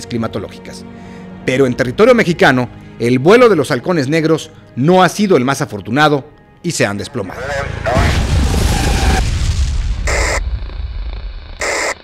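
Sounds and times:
deep boom: 7.9s - 11.6s
electronic static bursts: 8.6s - 12.0s.

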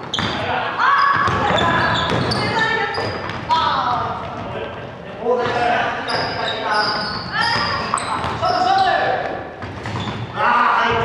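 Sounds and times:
shoe squeaks: 0.0s - 3.6s, 5.9s - 10.4s
basketball bouncing: 1.1s - 3.5s, 7.4s - 8.4s.

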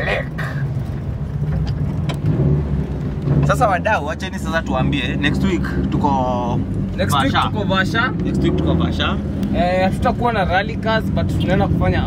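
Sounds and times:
rally car engine drone: 0.0s - 12.0s
road noise: 0.0s - 12.0s.

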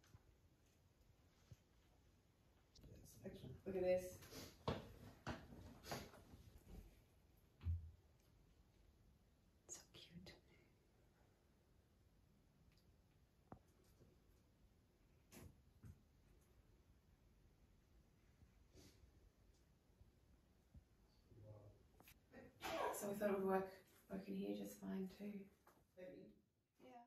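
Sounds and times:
faint whisper: 9.7s - 11.0s.

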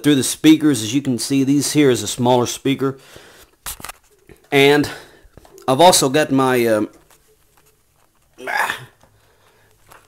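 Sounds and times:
man's hiccup-like throat sound: 8.4s - 9.0s.

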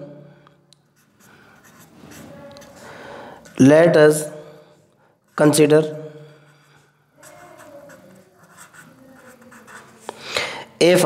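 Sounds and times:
marker pen writing on paper: 0.8s - 3.7s, 6.4s - 10.2s.

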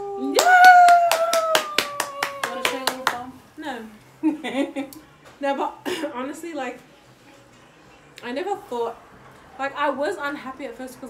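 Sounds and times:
quick hand claps: 0.4s - 3.2s.

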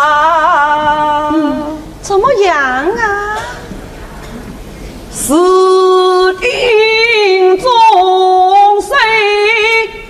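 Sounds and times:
woman singing opera: 0.0s - 1.8s, 5.2s - 10.0s.

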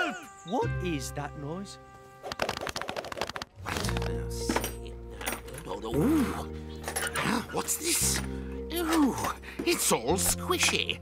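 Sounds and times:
music with low sustained notes: 0.0s - 2.3s, 3.6s - 11.0s.

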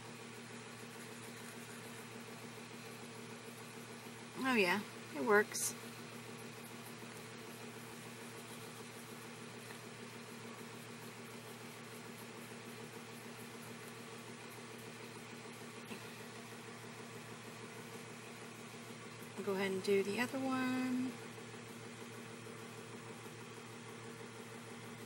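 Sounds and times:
steady low hum with hiss: 0.0s - 25.0s.

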